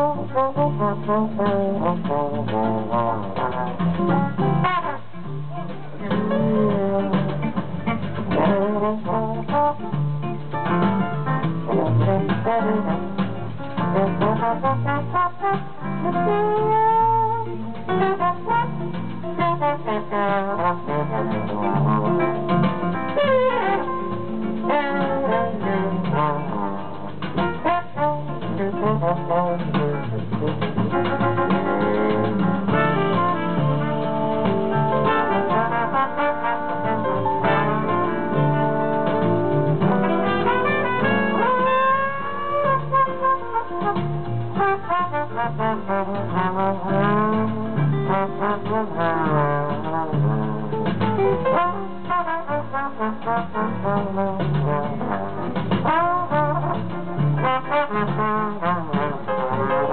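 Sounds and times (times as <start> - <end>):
guitar: 0.0 - 55.9
brass section chords: 0.0 - 59.9
double bass: 0.0 - 59.9
piano: 0.0 - 59.9
trombone melody: 0.0 - 59.9.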